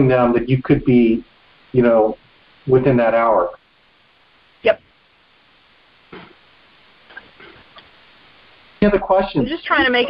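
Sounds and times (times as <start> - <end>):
faint telephone line hiss: 0.0 - 10.0.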